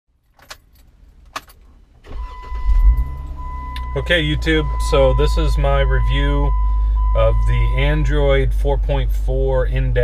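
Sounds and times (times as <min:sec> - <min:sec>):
key clicking in ignition: 0:00.2 - 0:01.7
car engine cranking and idling: 0:00.2 - 0:10.0.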